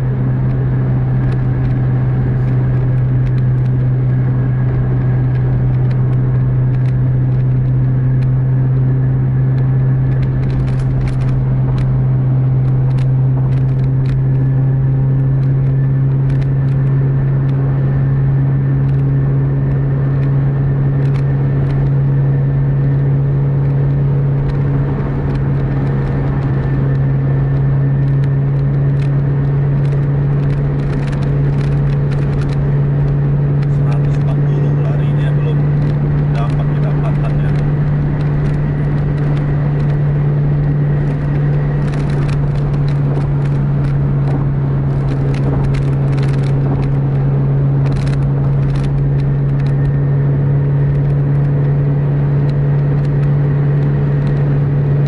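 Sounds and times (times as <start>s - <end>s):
bus engine and road drone: 0.0s - 55.0s.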